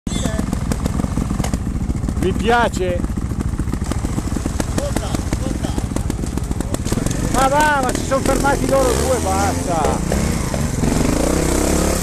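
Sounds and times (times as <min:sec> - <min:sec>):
motorcycle engine running: 0:00.1 - 0:12.0.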